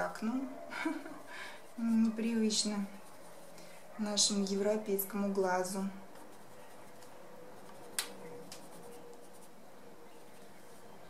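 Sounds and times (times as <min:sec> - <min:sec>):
pencil rubbing on paper: 0:06.2 - 0:10.9.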